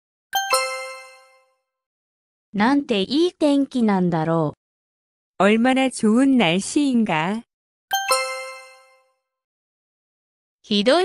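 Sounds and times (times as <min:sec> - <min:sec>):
two-note chime: 0:00.4 - 0:01.5, 0:07.9 - 0:09.1.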